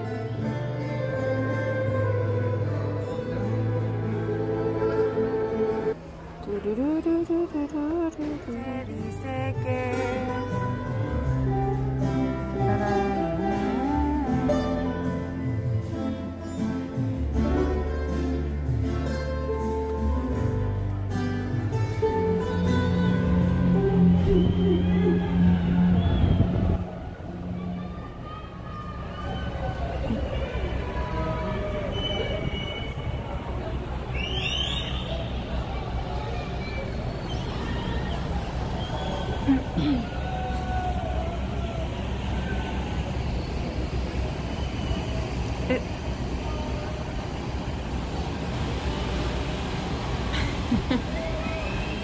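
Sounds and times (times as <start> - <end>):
ship engines rumbling: 22.1 - 52.0
faint distant voices: 26.8 - 52.0.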